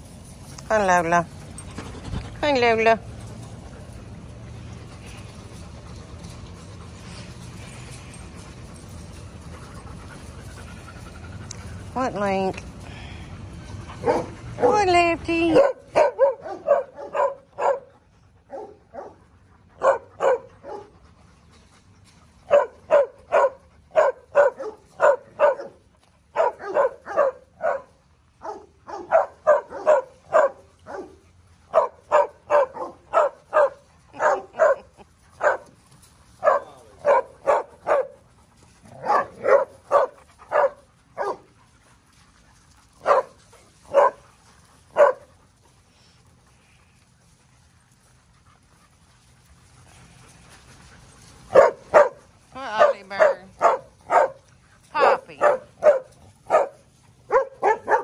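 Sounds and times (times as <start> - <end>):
dog barking: 15.5 - 17.9, 19.8 - 20.9, 22.5 - 25.8, 26.4 - 31.1, 31.7 - 34.8, 36.4 - 38.1, 39.0 - 41.4, 43.0 - 43.3, 43.9 - 44.2, 45.0 - 45.2, 51.5 - 52.2, 52.8 - 54.4, 55.0 - 58.0.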